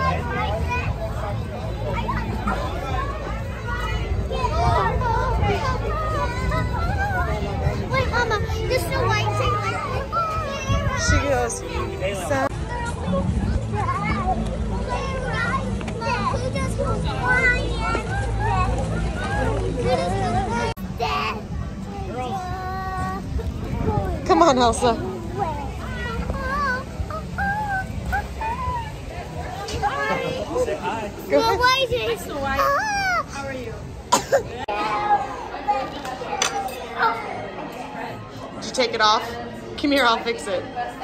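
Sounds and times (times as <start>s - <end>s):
young children chattering: 0.0s - 41.0s.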